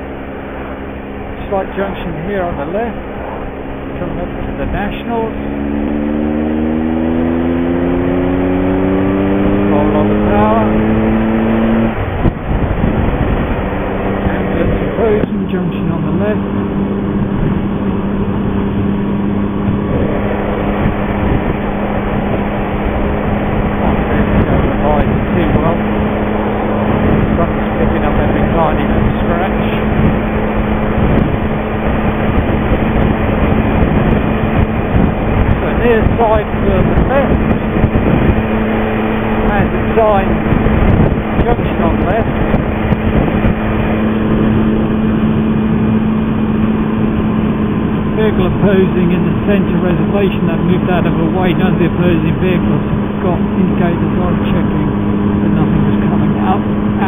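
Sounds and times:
motorcycle engine cruising: 0:00.0 - 0:57.0
wind rush on microphone: 0:00.0 - 0:57.0.

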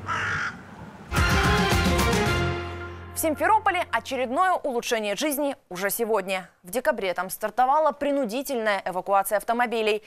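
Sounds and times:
crow cawing: 0:00.0 - 0:00.6.

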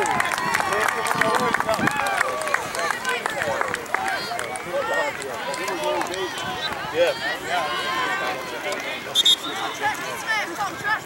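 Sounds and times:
people shouting and calling: 0:00.0 - 0:11.0.

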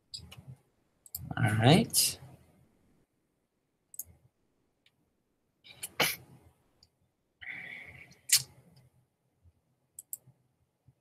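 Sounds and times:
computer mouse clicks: 0:03.9 - 0:04.2, 0:10.0 - 0:10.3.

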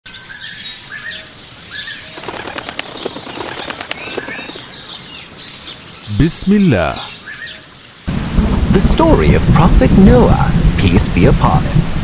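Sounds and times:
birds chirping: 0:00.1 - 0:08.2
wings flapping: 0:02.1 - 0:05.1.

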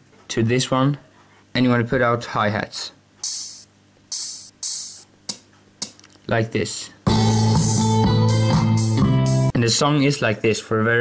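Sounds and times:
hi-hat hits: 0:03.2 - 0:06.0, 0:07.1 - 0:09.0.

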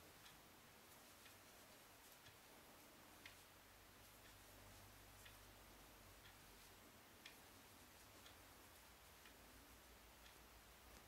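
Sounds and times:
faint ticks: 0:00.0 - 0:11.0.

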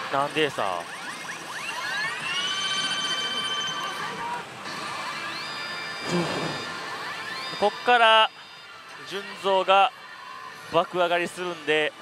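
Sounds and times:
slot machine rising electronic tones: 0:00.0 - 0:09.7.

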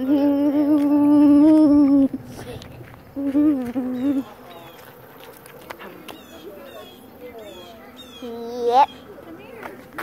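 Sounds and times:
child humming: 0:00.0 - 0:02.2, 0:03.2 - 0:04.2.

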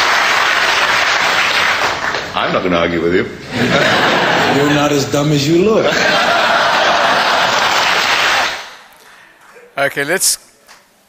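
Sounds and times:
audience applause: 0:00.0 - 0:02.4, 0:05.9 - 0:08.8.

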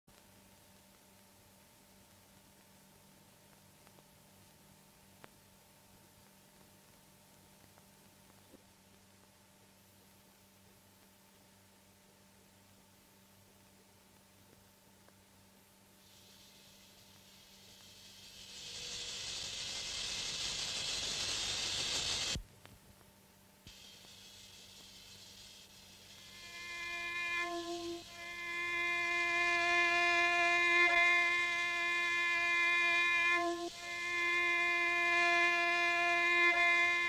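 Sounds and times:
hissing rushing noise: 0:16.0 - 0:22.4, 0:23.7 - 0:29.4
bowed string note: 0:26.2 - 0:37.0.

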